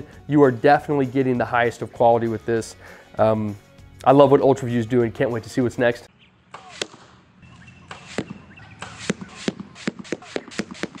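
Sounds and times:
arrows striking foam target: 6.5s - 7.1s, 7.9s - 11.0s.

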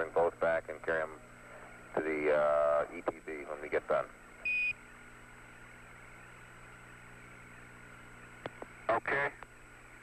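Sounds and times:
faint radio hiss: 0.0s - 10.0s.

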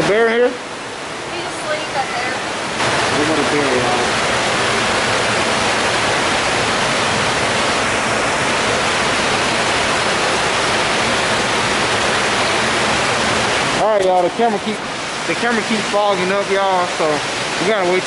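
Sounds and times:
water rushing over rocks: 0.0s - 18.0s.

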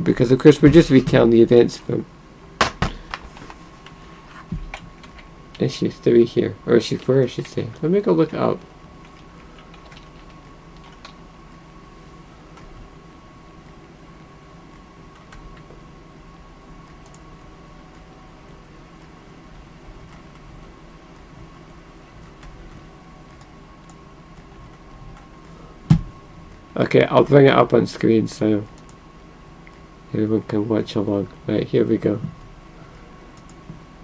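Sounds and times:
electrical hum with high whine: 0.0s - 34.0s.

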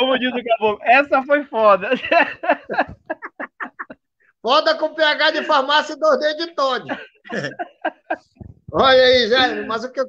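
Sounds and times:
man speaking: 0.0s - 0.9s, 4.4s - 7.6s, 8.7s - 10.0s.

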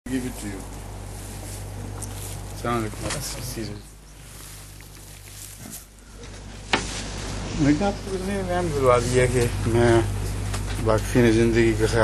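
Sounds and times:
low background noise: 0.1s - 12.0s
low electrical hum: 0.1s - 12.0s.

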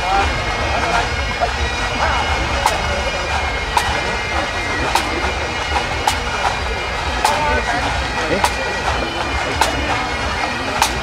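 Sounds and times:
bagpipes playing: 0.0s - 11.0s
drum strikes: 0.0s - 11.0s.

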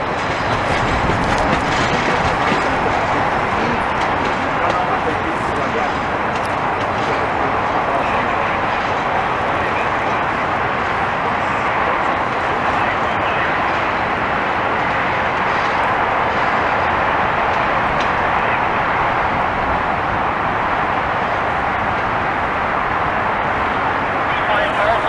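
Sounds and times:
steady vehicle noise: 0.0s - 25.0s.

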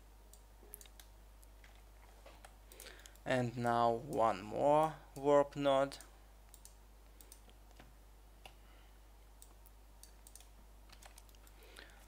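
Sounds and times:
mouse and keyboard clicks: 9.4s - 11.6s.

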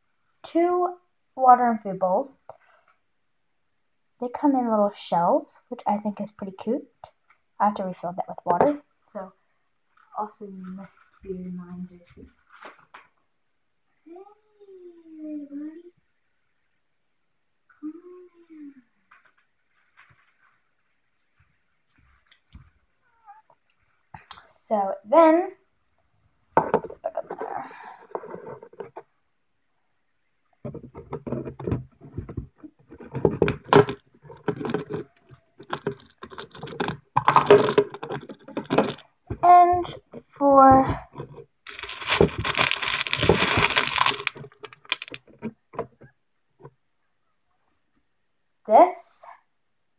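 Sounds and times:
objects knocking and clattering: 26.6s - 27.5s, 30.6s - 40.0s, 40.7s - 46.1s.

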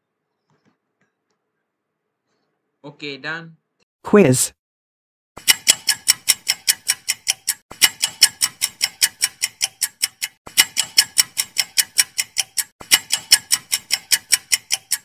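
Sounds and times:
clock ticking: 5.4s - 15.0s.

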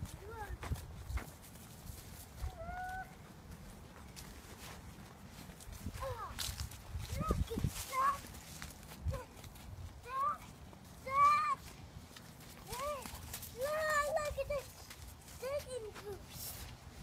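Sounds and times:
small child's high-pitched vocal sounds: 2.4s - 3.2s, 5.9s - 8.3s, 9.0s - 9.4s, 10.0s - 11.7s, 12.7s - 14.8s, 15.4s - 16.7s.

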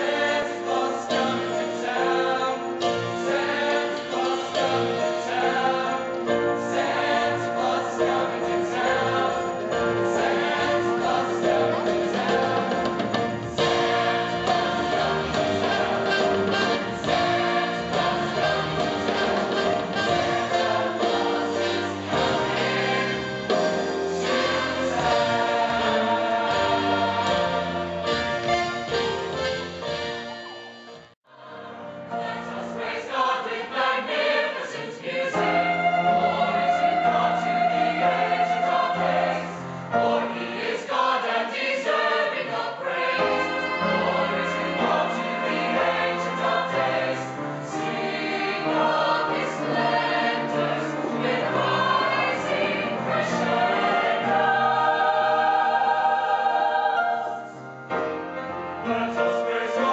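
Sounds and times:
mixed choir singing: 0.0s - 30.5s, 31.3s - 59.9s.

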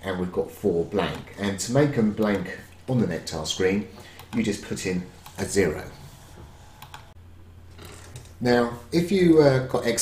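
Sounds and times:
low steady hum: 0.0s - 10.0s
computer keys clicking: 6.8s - 7.1s.

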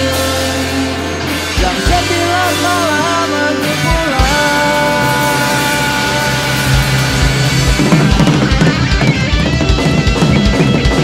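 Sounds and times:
rock band sustained chord: 0.0s - 11.0s
low drum thumps: 6.4s - 11.0s.

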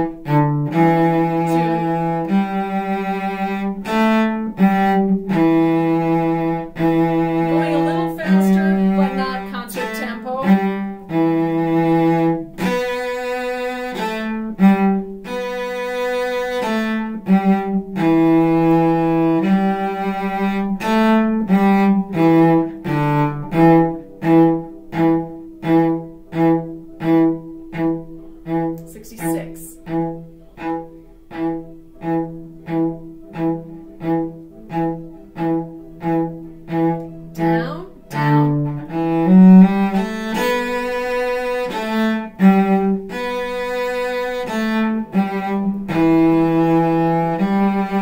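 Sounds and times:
solo bowed cello: 0.0s - 48.0s.

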